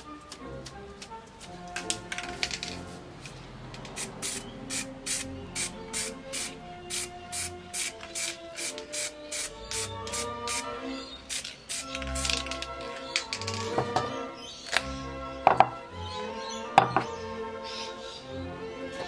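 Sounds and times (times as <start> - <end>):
background music: 0.0 - 19.0
spray paint can hissing: 3.9 - 12.5.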